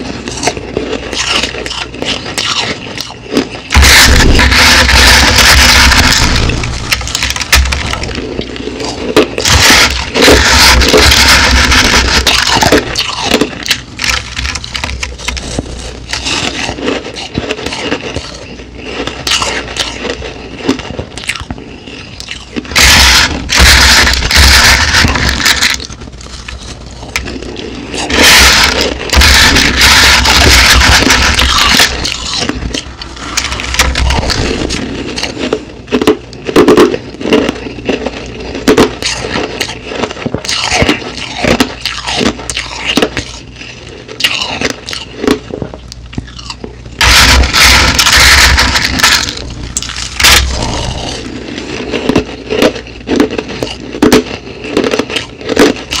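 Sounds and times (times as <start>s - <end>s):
crushed ice crunching: 0.0s - 45.5s, 46.2s - 56.0s.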